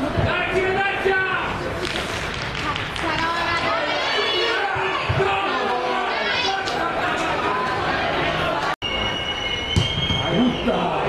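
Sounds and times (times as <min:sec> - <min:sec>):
crowd chatter: 0:00.0 - 0:11.0
referee's whistle blast: 0:08.8 - 0:11.0.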